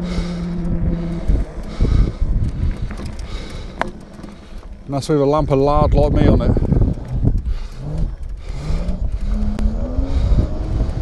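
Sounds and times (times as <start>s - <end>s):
electric motor whining: 0.0s - 4.9s, 6.5s - 11.0s
wind rumbling on microphone: 0.0s - 11.0s.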